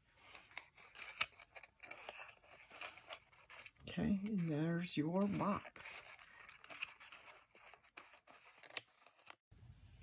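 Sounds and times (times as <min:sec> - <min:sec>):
paper rustling and scraping: 0:00.2 - 0:09.4.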